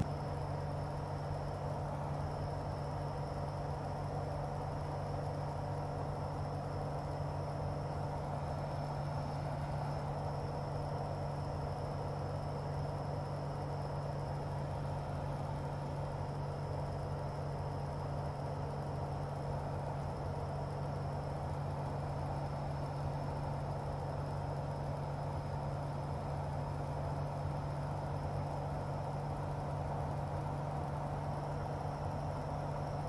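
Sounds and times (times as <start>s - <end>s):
airplane engine and propeller drone: 0.0s - 33.0s.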